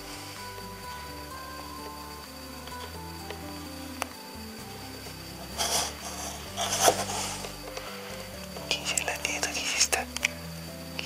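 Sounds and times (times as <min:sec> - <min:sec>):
rasping rubbing noises: 0:05.5 - 0:08.2.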